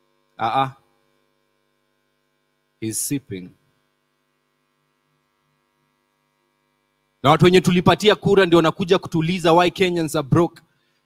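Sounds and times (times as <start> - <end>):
faint electrical hum: 0.0 - 11.0
man speaking: 0.4 - 0.8, 2.8 - 3.5, 7.2 - 10.6.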